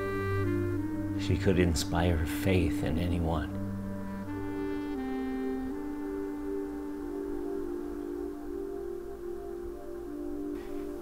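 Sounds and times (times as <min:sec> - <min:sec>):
soft film score: 0:00.0 - 0:11.0.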